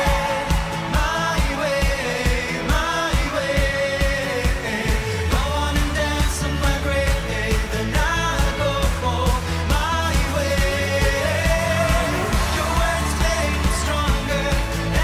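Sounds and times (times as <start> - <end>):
steady drum beat: 0.0 - 15.0
sustained bass: 0.0 - 15.0
woman singing lead: 0.0 - 15.0.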